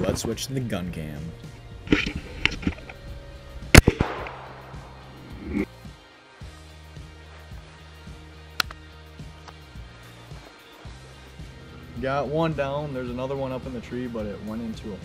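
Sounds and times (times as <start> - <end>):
background music: 0.0 - 15.0
shotgun shot with echo: 3.7 - 5.5
faint sharp crack: 3.7 - 5.6, 8.5 - 8.8.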